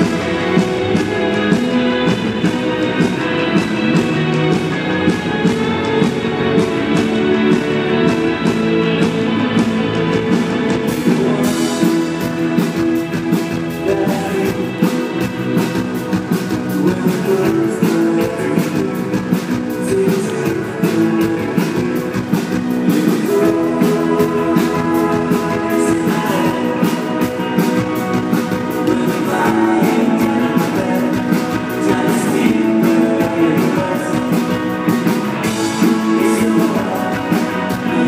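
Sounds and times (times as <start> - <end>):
live rock band playing: 0.0 - 38.0.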